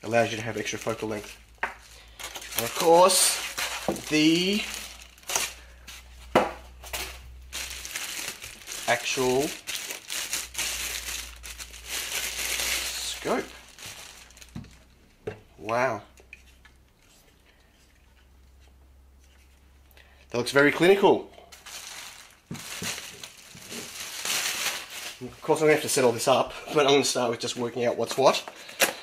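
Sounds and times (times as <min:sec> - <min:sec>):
plastic bag crinkling: 0:00.0 - 0:14.9, 0:21.5 - 0:29.0.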